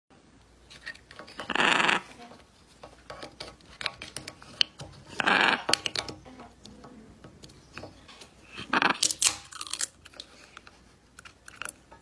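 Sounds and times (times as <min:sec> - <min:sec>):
macaw raspy call: 0:01.5 - 0:02.1, 0:05.2 - 0:05.8, 0:08.6 - 0:09.1.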